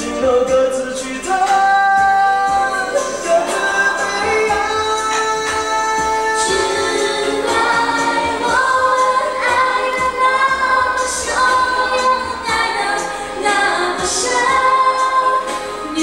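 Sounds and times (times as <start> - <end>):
musical backing with light percussion: 0.0 - 16.0.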